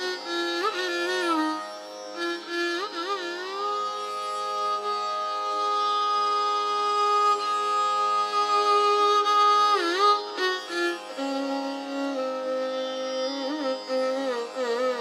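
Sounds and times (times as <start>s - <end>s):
steady tanpura drone: 0.0s - 15.0s
violin playing slow phrase: 0.0s - 15.0s.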